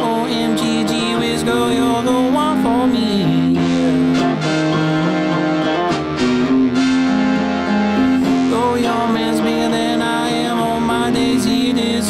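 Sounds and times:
electric guitar strumming: 0.0 - 12.0
electric keyboard held notes: 0.0 - 12.0.

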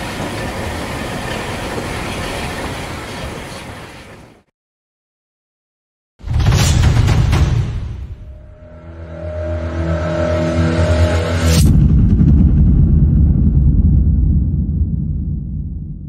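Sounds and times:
sharp hit: 6.3 - 14.6
deep rumble: 8.2 - 16.0
droning tone: 8.3 - 16.0.

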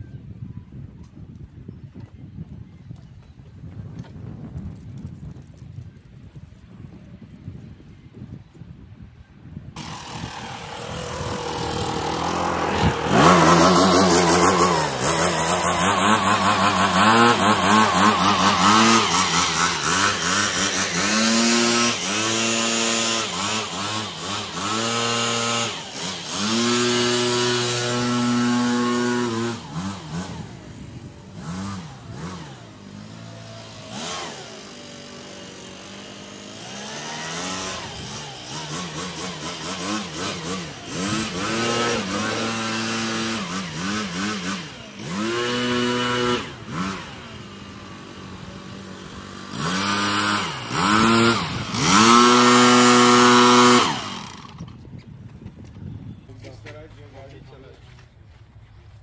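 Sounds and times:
leaf blower engine revving: 9.8 - 55.0.

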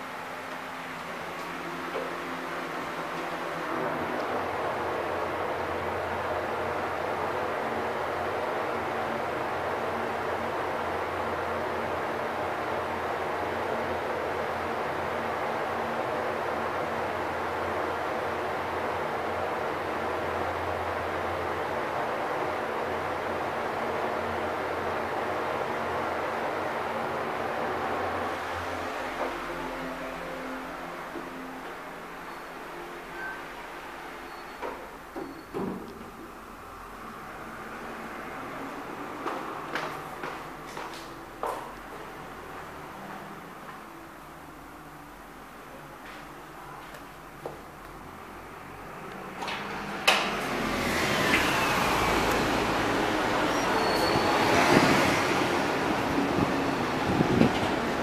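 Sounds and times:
elevator ride rushing noise: 0.0 - 58.0.

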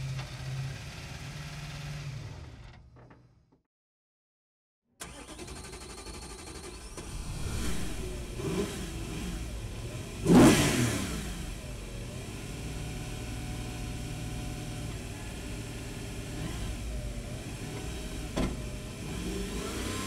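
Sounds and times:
car engine revving: 5.0 - 20.0.

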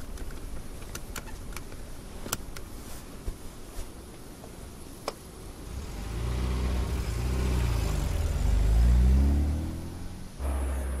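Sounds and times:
engine low rumble: 4.3 - 11.0
car engine accelerating: 5.6 - 11.0.

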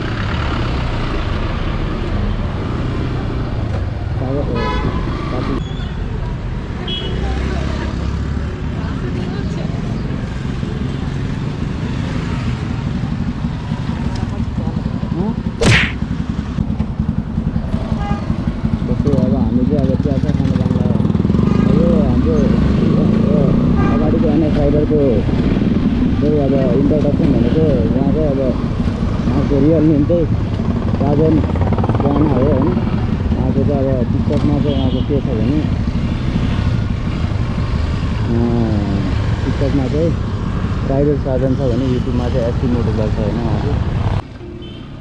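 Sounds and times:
motorcycle engine rumbling: 8.8 - 45.0
man talking: 38.3 - 40.2, 40.9 - 43.8.

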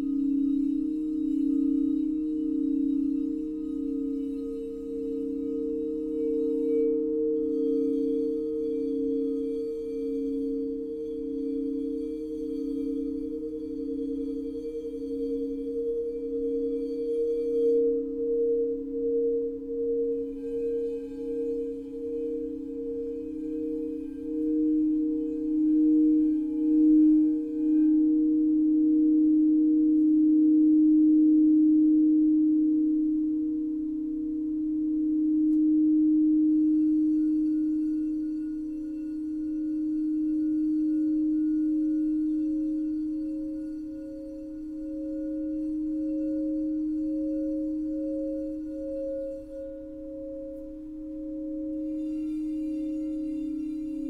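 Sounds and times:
crystal singing bowls ringing: 0.0 - 54.0.

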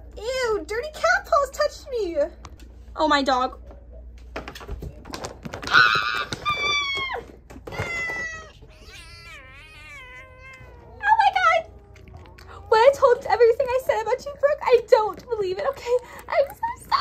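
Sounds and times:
cat meowing: 7.8 - 12.8.

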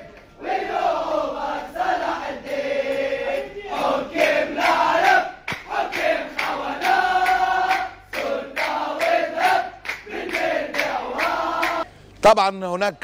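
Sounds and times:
crowd chanting in unison: 0.0 - 11.9.

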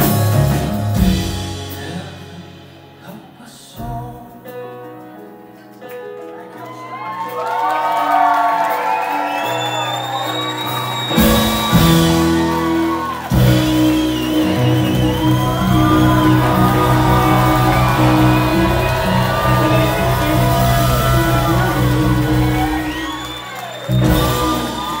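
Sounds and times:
soul band playing: 0.0 - 25.0
audience shouts and whoops: 6.5 - 25.0.

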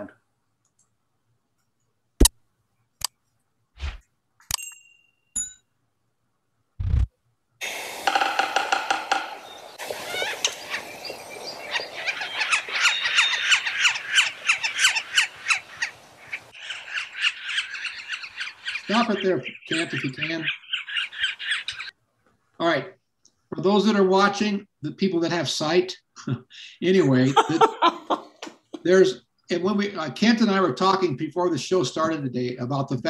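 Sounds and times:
recorded bird calls through speaker: 8.1 - 21.9.

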